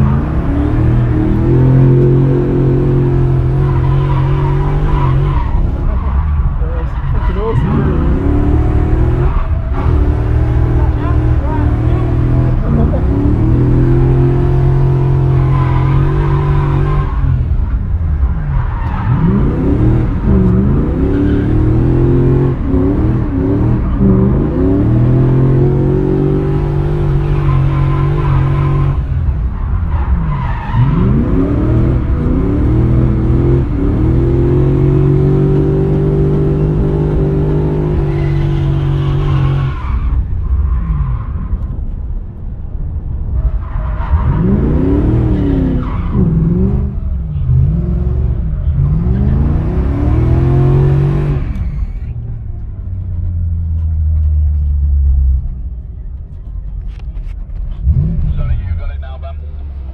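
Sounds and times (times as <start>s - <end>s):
car engine revving hard: 0.0s - 6.0s, 7.4s - 17.4s, 19.1s - 29.1s, 30.7s - 39.8s, 44.2s - 51.6s.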